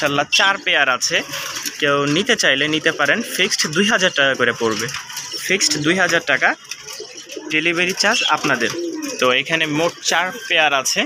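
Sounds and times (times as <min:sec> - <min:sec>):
man talking: 0:00.0 - 0:06.6, 0:07.4 - 0:11.0
pigeons cooing: 0:00.0 - 0:11.0.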